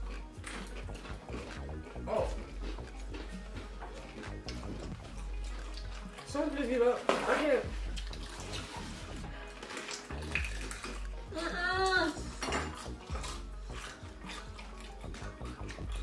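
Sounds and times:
wet chewing noises: 0:00.0 - 0:16.0.

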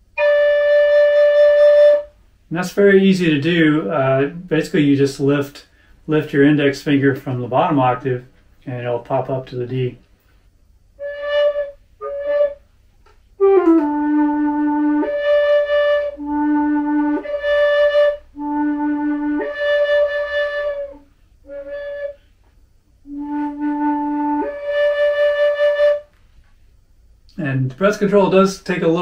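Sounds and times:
flute playing octave jumps: 0:00.0 - 0:04.5, 0:11.0 - 0:12.6, 0:13.4 - 0:22.4, 0:23.0 - 0:26.1.

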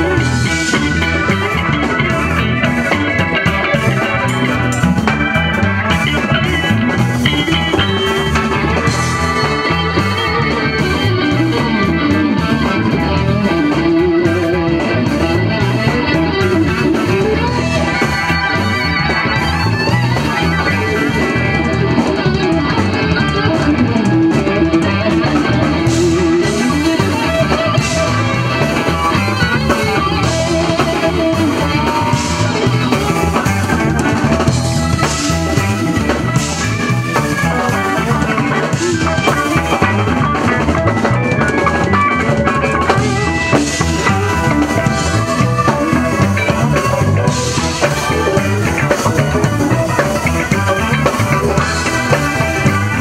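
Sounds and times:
drum kit beat: 0:00.0 - 0:53.0
electric guitars: 0:00.0 - 0:53.0.

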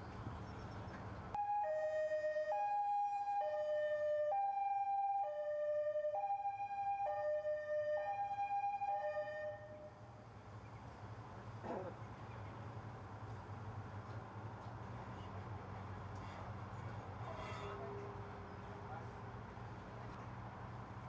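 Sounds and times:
two-tone police siren: 0:01.4 - 0:10.0.

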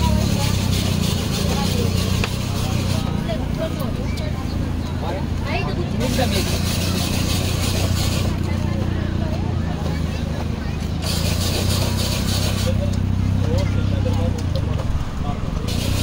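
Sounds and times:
people talking casually: 0:00.0 - 0:16.0
hiss: 0:11.0 - 0:12.8, 0:15.7 - 0:16.0.

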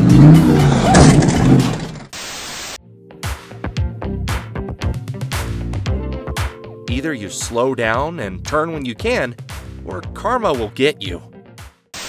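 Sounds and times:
car engine revving hard: 0:00.0 - 0:02.1
tyres squealing: 0:00.0 - 0:02.1
background music: 0:02.8 - 0:12.0
music with a beat: 0:03.0 - 0:07.6, 0:08.4 - 0:10.7, 0:11.4 - 0:11.9.

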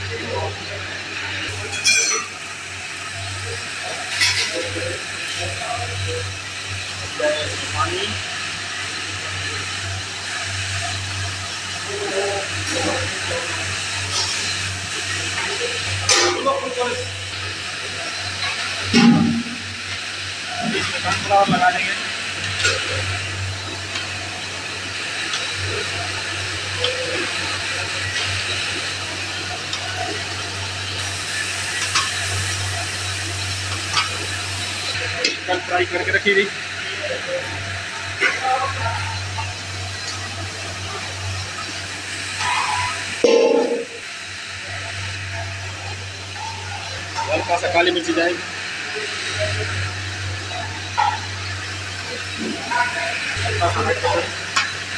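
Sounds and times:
pot of food boiling hard: 0:00.0 - 0:54.9
pot bump: 0:43.2 - 0:44.0.

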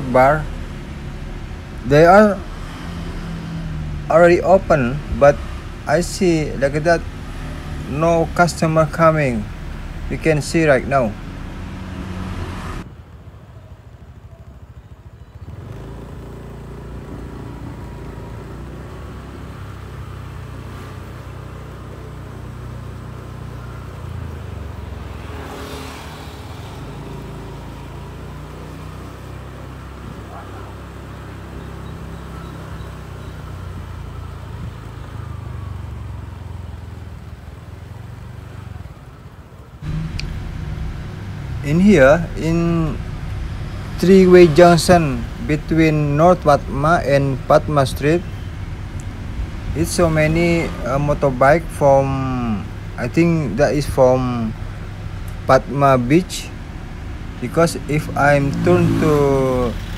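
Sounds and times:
vehicle passing: 0:00.0 - 0:13.4, 0:15.4 - 0:59.9
engine low rumble: 0:00.0 - 0:59.9.

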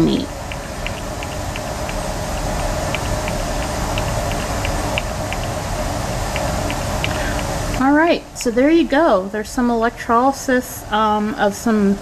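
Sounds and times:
stirring plate humming: 0:00.0 - 0:09.1.

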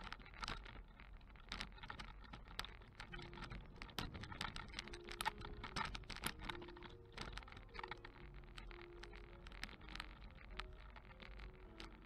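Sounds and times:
camera rig clicking and rattling: 0:00.0 - 0:12.0.

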